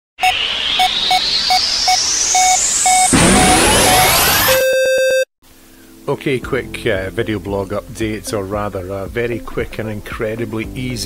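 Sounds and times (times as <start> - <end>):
stuttering buzzy tone: 0.2 - 5.0
rising synth sweep: 0.2 - 5.1
short electronic beeps: 0.2 - 5.3
hiss: 0.4 - 4.4.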